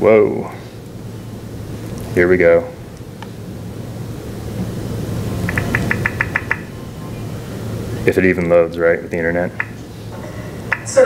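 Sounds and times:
steady low hum: 0.0s - 11.0s
short high volume blips: 5.2s - 7.2s.

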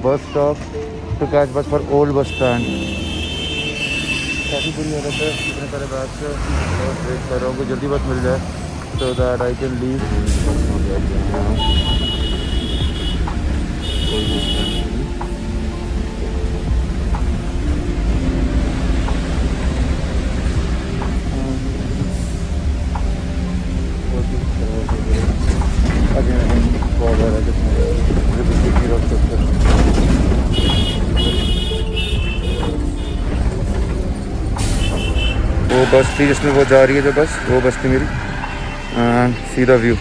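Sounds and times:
bus engine and road rumble: 0.0s - 40.0s.

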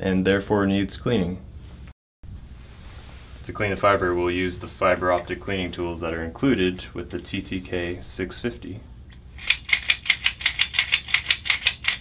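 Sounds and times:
cleaning tool clicking rapidly: 9.4s - 12.0s.

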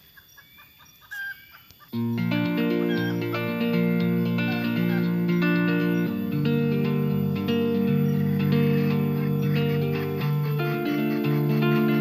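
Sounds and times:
junglefowl clucking and calling: 0.0s - 2.0s, 2.8s - 3.4s, 4.4s - 5.2s, 8.0s - 12.0s.

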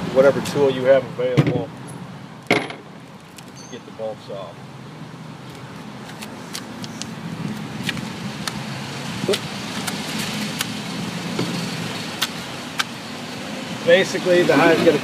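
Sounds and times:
vehicle engine hum: 0.0s - 15.0s.

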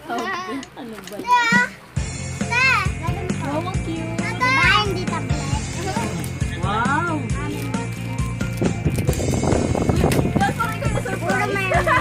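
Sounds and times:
background music: 1.5s - 12.0s.

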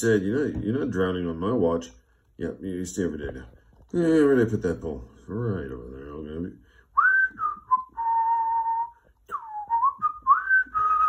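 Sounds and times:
person whistling a tune: 6.9s - 11.0s.

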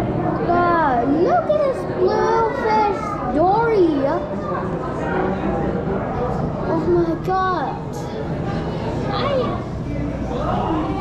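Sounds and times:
children's voices: 0.2s - 5.3s, 6.6s - 11.0s.

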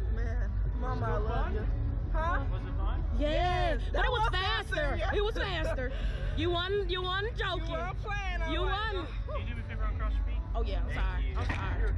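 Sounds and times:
low rumble: 0.0s - 11.9s.

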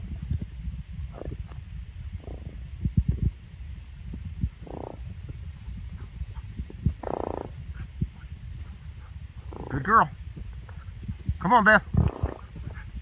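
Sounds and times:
wind rumble on microphone: 0.0s - 13.0s
rough animal sounds: 6.0s - 10.1s.

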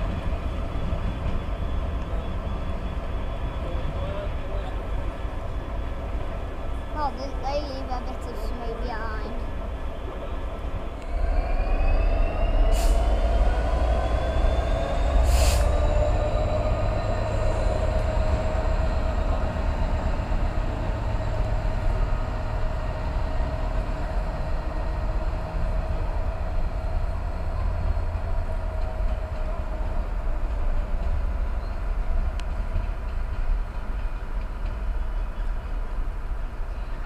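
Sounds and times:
diesel locomotive engine rumbling: 0.0s - 37.0s.

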